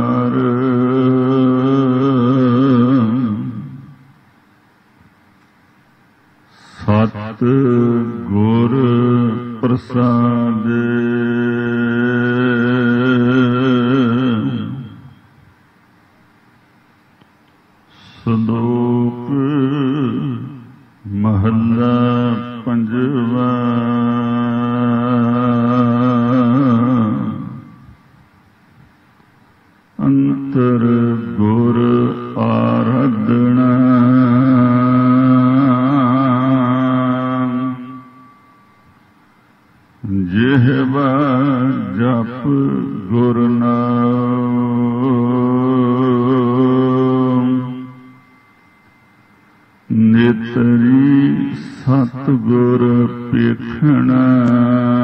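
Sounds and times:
man chanting a hymn: 0:06.5 - 0:15.1, 0:17.9 - 0:27.8, 0:30.0 - 0:38.1, 0:40.0 - 0:48.1, 0:49.9 - 0:55.0.

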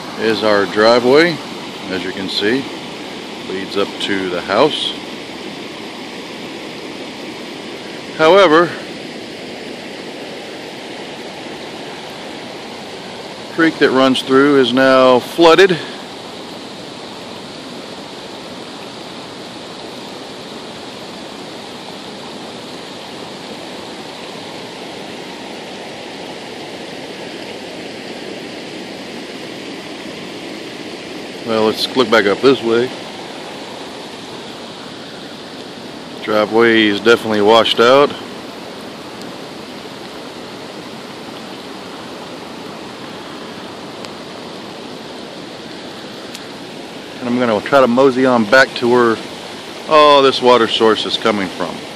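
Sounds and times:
creek water rushing: 0:00.0 - 0:51.9.

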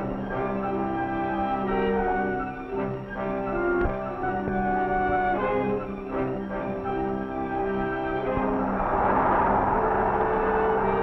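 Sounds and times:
orchestral strings and brass: 0:00.0 - 0:11.0
rushing noise: 0:07.6 - 0:11.0.

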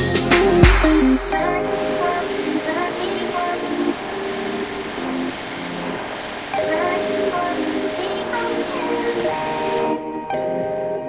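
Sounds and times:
background music with held notes: 0:00.0 - 0:05.9, 0:06.5 - 0:11.0
hissing: 0:00.0 - 0:10.0.

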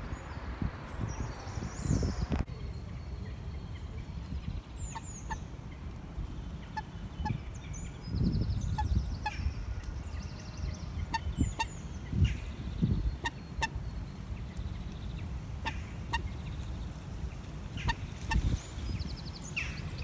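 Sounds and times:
small birds chirping: 0:00.0 - 0:20.0
moorhen calls: 0:04.8 - 0:05.8, 0:10.9 - 0:13.8, 0:15.6 - 0:16.5.

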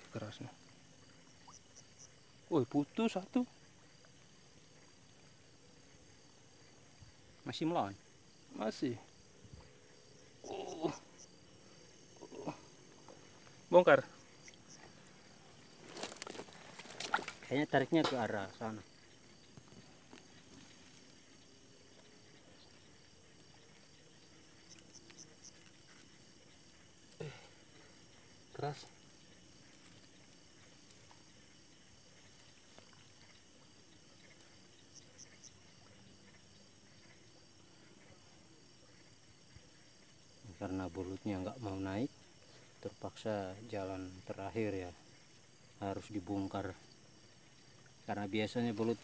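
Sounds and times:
night insects chirping: 0:00.0 - 0:49.0.

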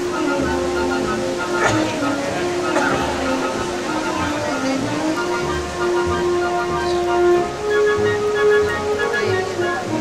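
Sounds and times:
slow melody of long held notes: 0:00.0 - 0:10.0
steady background hiss: 0:00.0 - 0:10.0.

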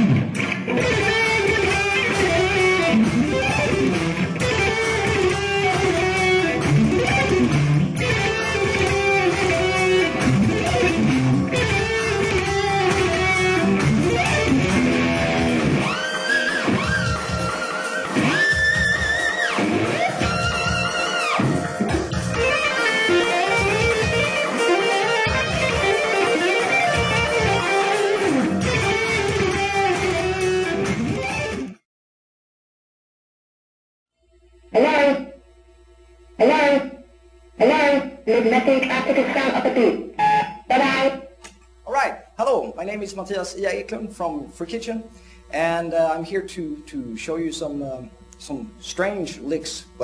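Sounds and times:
electric guitar solo: 0:00.0 - 0:31.8, 0:34.7 - 0:35.4, 0:36.4 - 0:37.0, 0:37.6 - 0:41.4
person speaking: 0:34.8 - 0:35.4, 0:36.4 - 0:37.0, 0:37.6 - 0:40.1, 0:40.7 - 0:50.0.

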